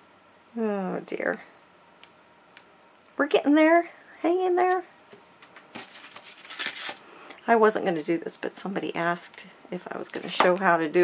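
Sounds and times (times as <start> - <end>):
paper crinkling: 5.7 - 7.1.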